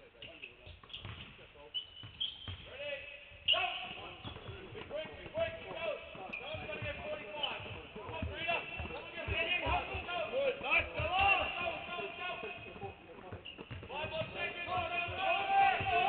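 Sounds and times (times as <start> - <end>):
basketballs dribbling on hardwood: 0.7 - 16.0
voices: 2.7 - 16.0.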